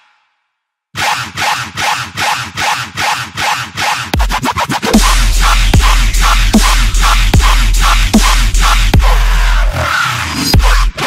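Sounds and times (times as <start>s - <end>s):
electronic dance music: 1.0s - 11.0s
harsh pulsing synth: 4.2s - 11.0s.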